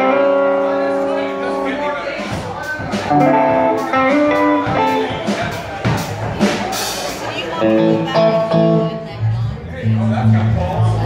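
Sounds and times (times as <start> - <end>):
electric guitars playing blues: 0.0 - 11.0
drum hits: 2.2 - 7.4.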